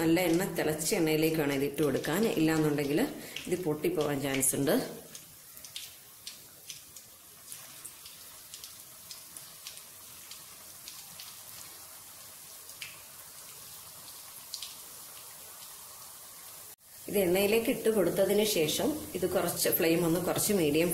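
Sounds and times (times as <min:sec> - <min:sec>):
oil crackling and popping: 0:02.5 - 0:11.8, 0:12.6 - 0:13.6
food sizzling in oil: 0:07.2 - 0:20.9.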